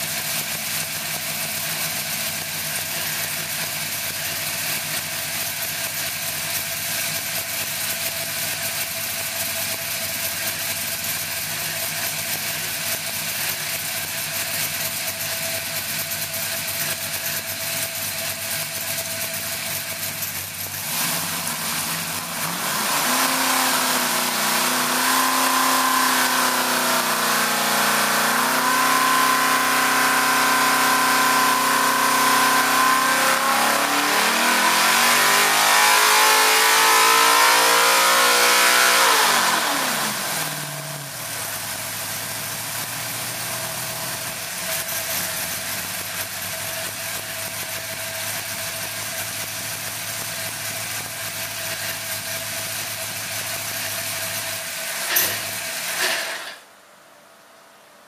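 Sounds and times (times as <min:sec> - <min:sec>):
racing engine revving: 0:20.7 - 0:46.2.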